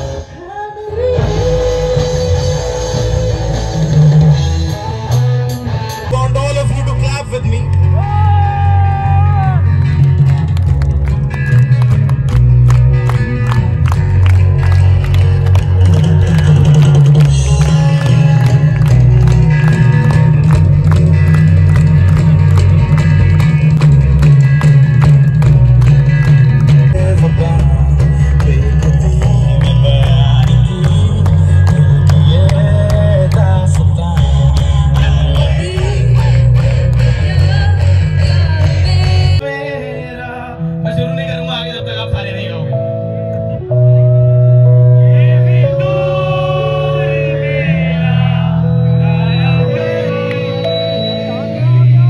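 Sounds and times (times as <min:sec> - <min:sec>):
person singing: 0:00.0 - 0:04.3, 0:15.8 - 0:20.6, 0:26.9 - 0:41.3, 0:44.6 - 0:52.0
electric guitar: 0:00.0 - 0:52.0
live rock band: 0:00.0 - 0:52.0.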